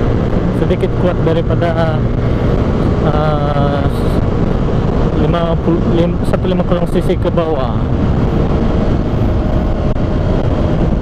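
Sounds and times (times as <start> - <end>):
motorcycle engine running: 0.0 - 11.0
wind on microphone: 0.0 - 11.0.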